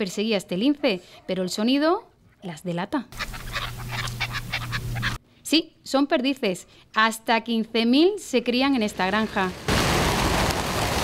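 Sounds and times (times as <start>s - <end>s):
partridges chattering calls: 3.2s - 5.2s
steady low hum: 3.2s - 5.3s.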